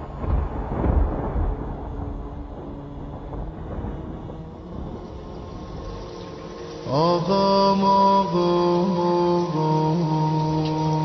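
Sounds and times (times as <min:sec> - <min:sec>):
solo voice chanting: 0:06.8 - 0:11.0.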